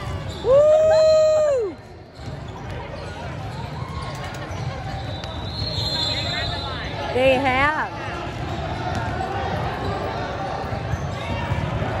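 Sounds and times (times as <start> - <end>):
many voices chattering: 0.0 - 12.0.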